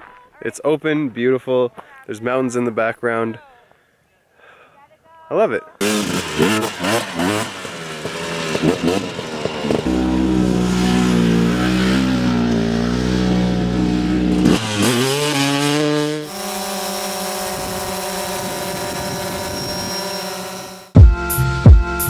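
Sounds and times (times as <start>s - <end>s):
vehicle engine revving: 5.8s - 21.0s.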